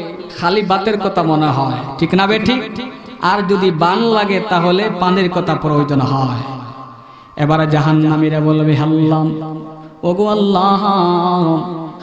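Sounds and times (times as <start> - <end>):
man chanting in sung style: 0.0 - 12.0.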